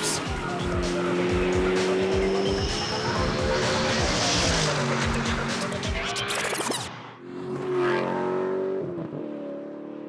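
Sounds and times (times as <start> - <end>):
car engine running: 0.0 - 7.0.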